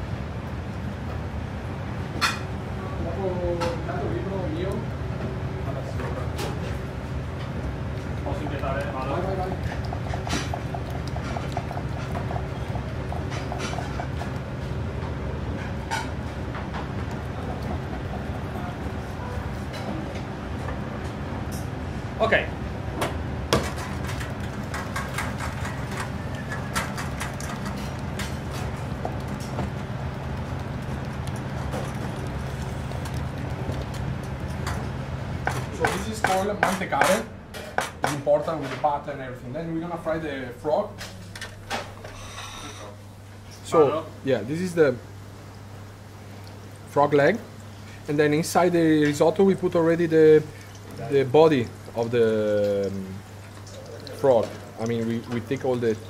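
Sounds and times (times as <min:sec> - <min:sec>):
steady low hum: 0:00.0 - 0:56.0
wooden spoon knocking on pans: 0:34.6 - 0:38.6.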